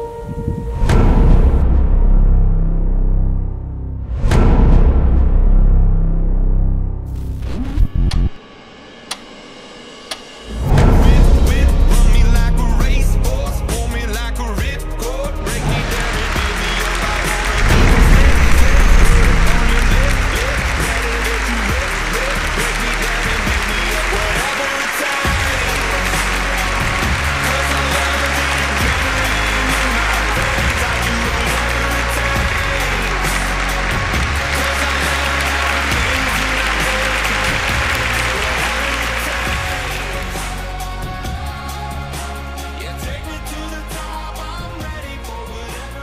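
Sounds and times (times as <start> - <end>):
music: 0.0 - 46.0
audience applauding and cheering: 10.1 - 46.0.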